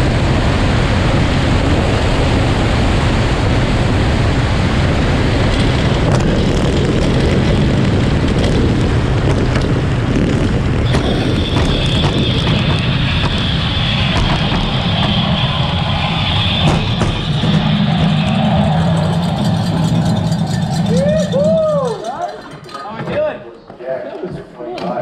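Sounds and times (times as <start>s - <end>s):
sled runners rumbling on ice: 0.0s - 23.3s
high scraping tone: 10.9s - 23.2s.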